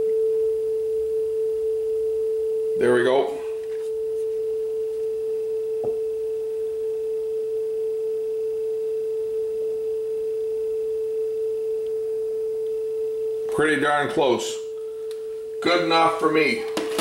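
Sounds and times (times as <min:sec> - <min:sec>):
steady test tone: 0:00.0 - 0:16.8.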